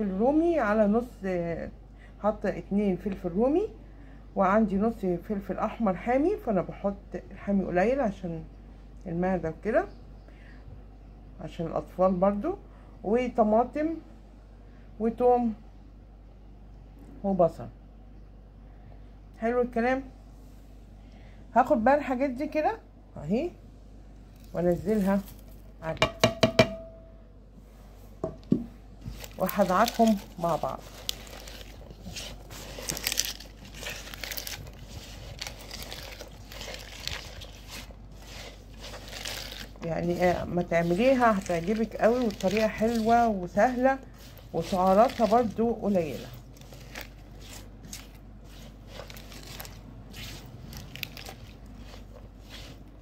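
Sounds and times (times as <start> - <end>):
vegetables rustling and crunching: 24.2 - 25.9, 28.9 - 53.0
plate knocking against pot: 26.0 - 27.0.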